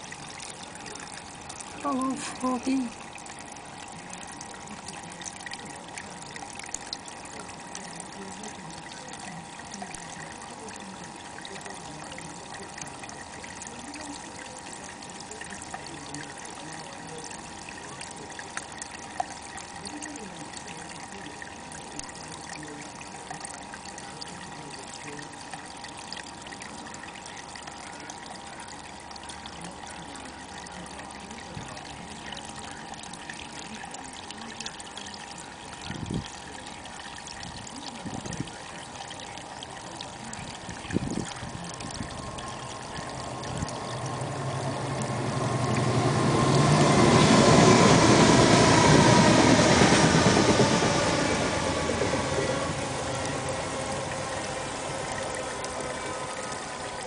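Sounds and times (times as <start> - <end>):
water drips: 0.0 - 57.0
water trickling into pond: 0.0 - 57.0.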